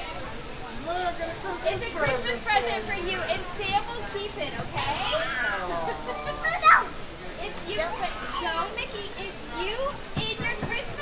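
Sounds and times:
excited voices: 4.7 - 8.9.

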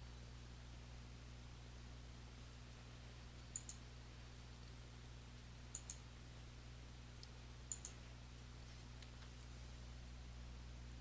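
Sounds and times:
faint low hum: 0.0 - 11.0
computer mouse clicking: 3.4 - 3.8, 5.7 - 6.0, 7.2 - 8.0.

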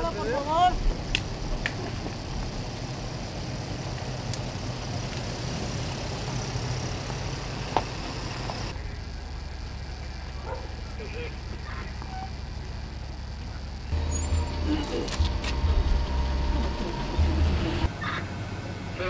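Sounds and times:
vehicle engine idling: 0.0 - 19.0.

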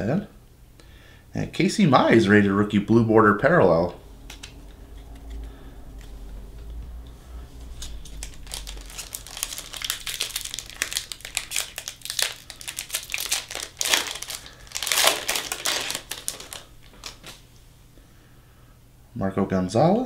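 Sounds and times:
foil wrapper crinkling and tearing: 7.7 - 17.4.

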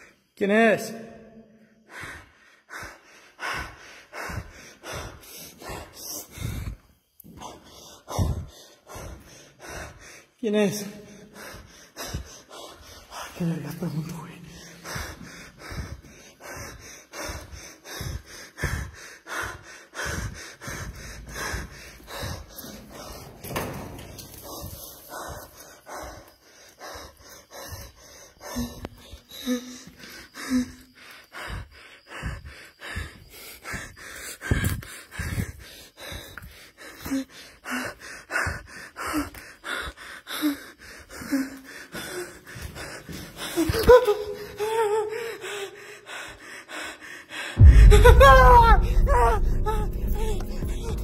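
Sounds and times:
man breathing heavily: 0.0 - 0.4, 1.4 - 51.0.

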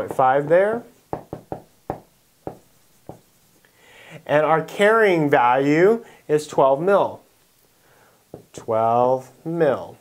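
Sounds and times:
marker tip tapping whiteboard: 1.1 - 3.3.

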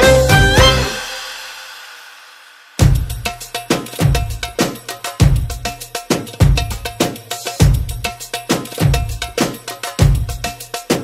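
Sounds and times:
short ringing note: 0.0 - 2.2
background music with percussion beat: 0.0 - 11.0.

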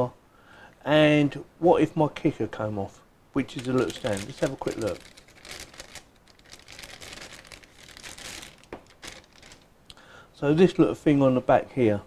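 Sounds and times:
packaging crinkling: 3.4 - 9.7.

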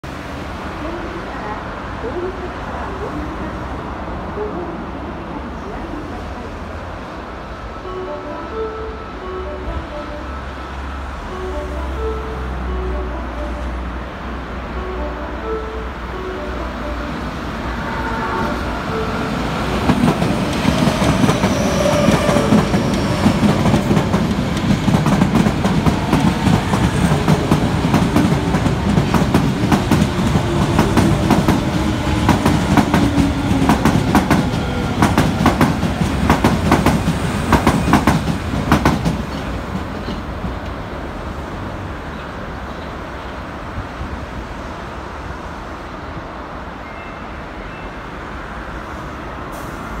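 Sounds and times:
train wheels clicking over rail joints: 19.8 - 40.8.

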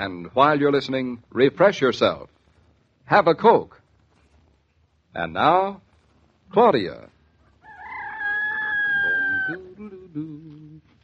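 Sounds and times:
rooster crowing: 7.6 - 9.7.

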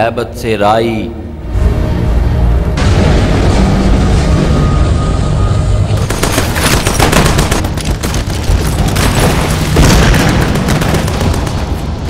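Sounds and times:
loud hit: 2.7 - 5.7
heavy booms: 2.8 - 5.6
rapid machine-gun fire: 6.0 - 12.0.

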